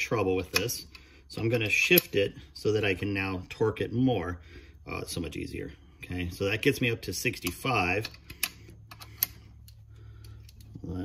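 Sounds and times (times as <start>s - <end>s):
faint steady hum: 0.0s - 11.0s
metallic clicks and taps: 7.4s - 10.8s.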